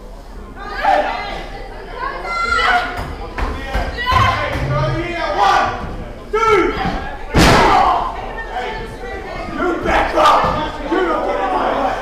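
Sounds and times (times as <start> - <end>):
crowd shouting and yelling: 0.5 - 12.0.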